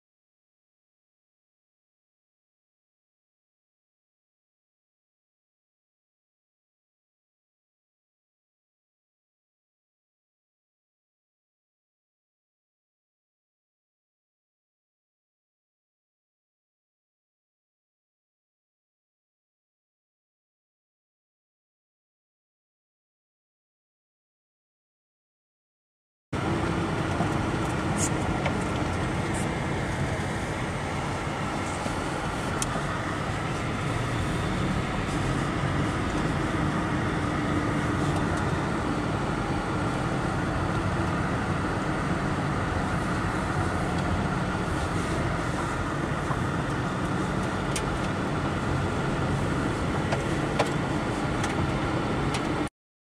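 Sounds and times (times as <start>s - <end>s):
car engine and tyre noise: 26.4s - 52.7s.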